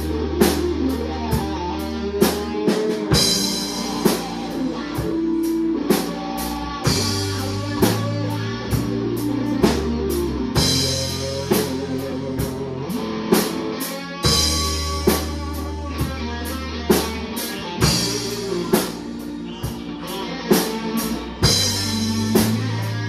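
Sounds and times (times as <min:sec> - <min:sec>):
rock band playing: 0:00.0 - 0:23.0.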